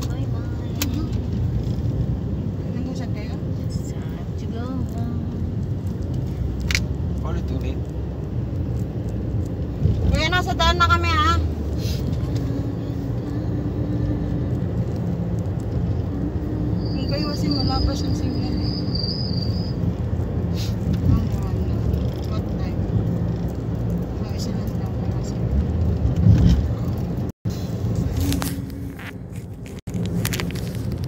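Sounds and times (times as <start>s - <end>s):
car engine rumble: 0.0s - 31.0s
tyres on the road: 0.0s - 31.0s.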